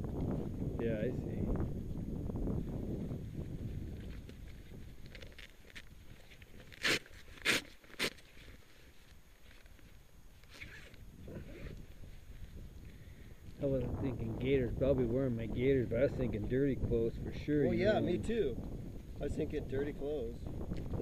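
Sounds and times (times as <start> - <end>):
sharp ripping rasps: 5.0 - 8.8, 10.4 - 11.8.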